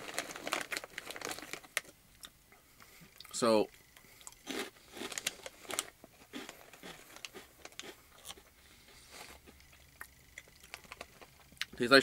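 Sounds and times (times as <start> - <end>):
crunchy cracker chewing: 0.0 - 2.4, 4.0 - 11.7.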